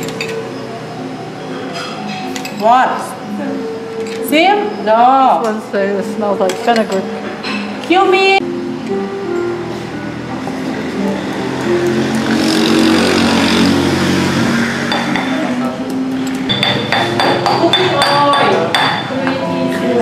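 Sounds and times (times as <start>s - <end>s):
background music with held melody: 0.0s - 20.0s.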